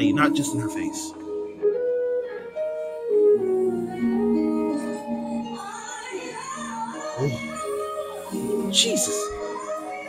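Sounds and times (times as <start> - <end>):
instrumental accompaniment: 0.0 - 10.0
woman singing into microphone: 1.1 - 10.0.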